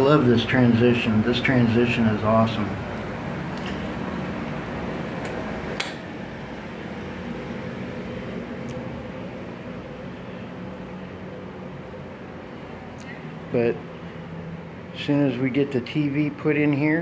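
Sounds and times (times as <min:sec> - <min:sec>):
air conditioner whirring hum: 0:00.0 - 0:17.0
sharp click: 0:05.2 - 0:06.1.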